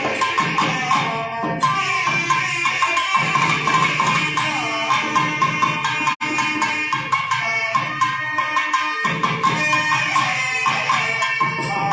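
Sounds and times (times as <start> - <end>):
thavil drum strokes: 0.0 - 11.9.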